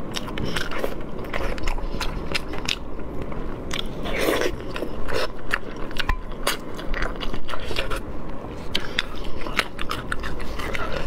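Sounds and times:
wet chewing and lip smacking: 0.0 - 11.0.

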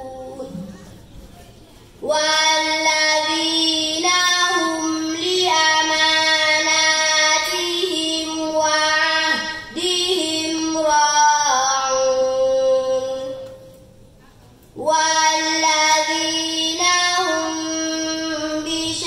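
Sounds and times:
girl chanting into a microphone: 0.0 - 1.0, 2.0 - 13.7, 14.8 - 19.0.

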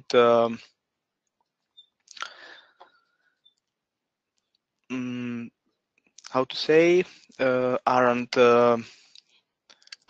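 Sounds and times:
soft breath: 2.2 - 3.4.

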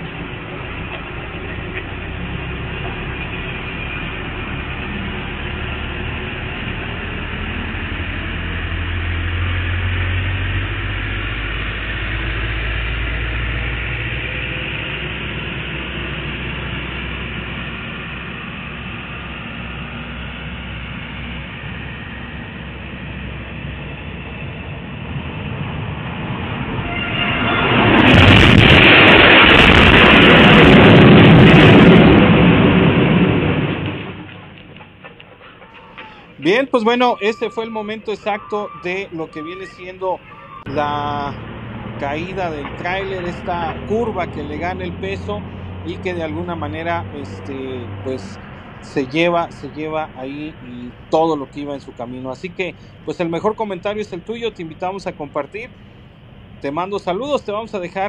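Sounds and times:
low engine rumble: 0.0 - 58.0
truck crashing: 26.4 - 58.0.

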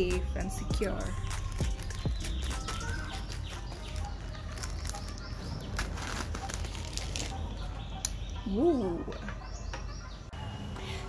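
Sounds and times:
plastic packaging rustling: 1.1 - 7.6.

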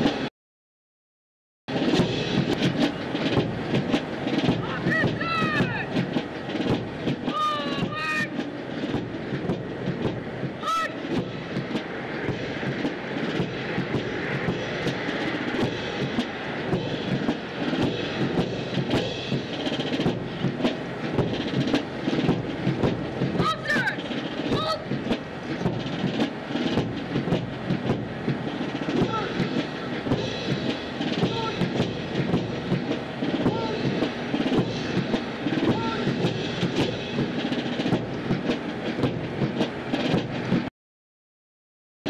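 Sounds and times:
marching footsteps on pavement: 1.7 - 40.7
crowd murmur: 1.8 - 40.6
voices calling out: 2.5 - 37.8.

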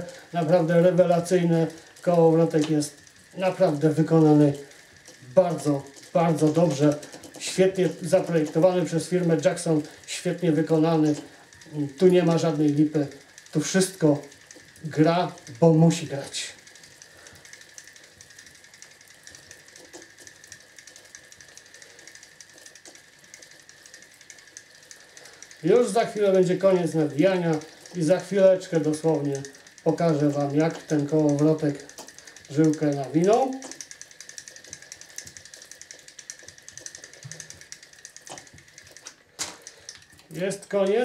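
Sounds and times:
fishing reel ticking: 0.0 - 41.0.

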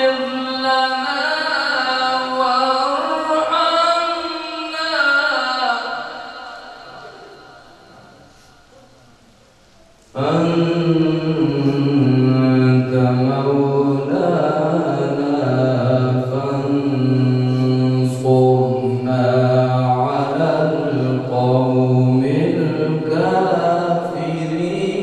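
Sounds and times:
man chanting recitation: 0.0 - 9.0, 10.1 - 25.0.

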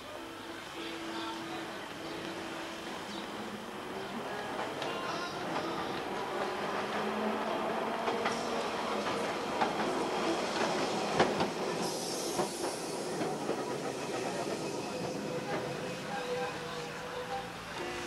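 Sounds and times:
tram wheels clattering over rails: 1.4 - 18.0
brief hiss: 11.8 - 13.2.

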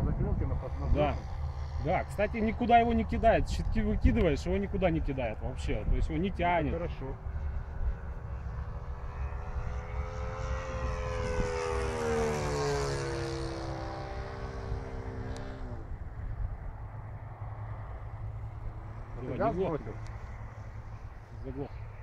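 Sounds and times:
model plane engine flying past: 0.0 - 22.0.

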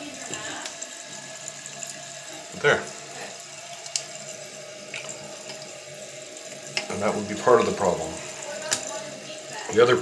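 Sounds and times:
water hissing into toilet tank: 0.0 - 10.0.

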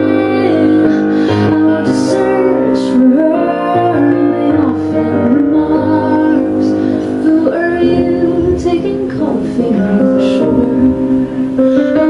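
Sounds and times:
keyboard chords: 0.0 - 12.0
woman singing into microphone: 0.0 - 12.0.

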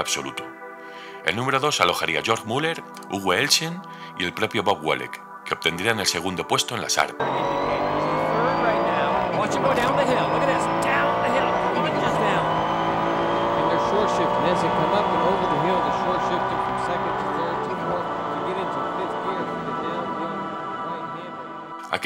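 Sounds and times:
racing car engine drone: 7.2 - 21.8.

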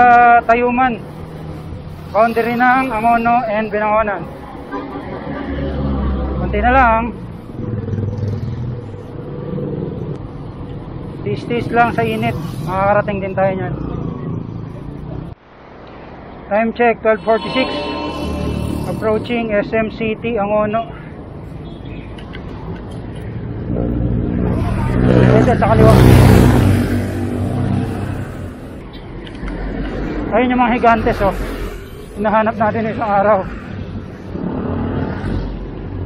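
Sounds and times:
road and wind rumble: 0.0 - 17.2, 19.3 - 36.0
motorcycle and car engines: 4.3 - 15.4, 23.2 - 30.4
steady hum: 17.2 - 20.4.

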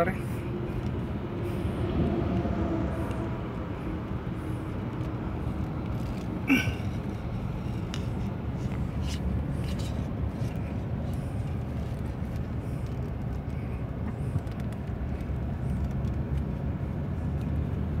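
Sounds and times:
car engine and tyre noise: 0.0 - 18.0.

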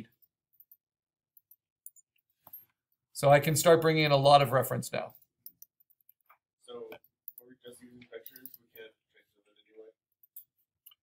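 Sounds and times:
voice: 3.2 - 5.2, 6.6 - 10.0.

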